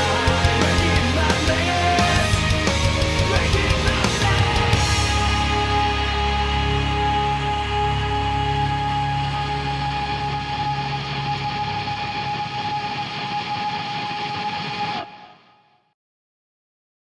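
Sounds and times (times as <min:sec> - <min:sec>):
distorted electric guitar chord: 0:00.0 - 0:15.2.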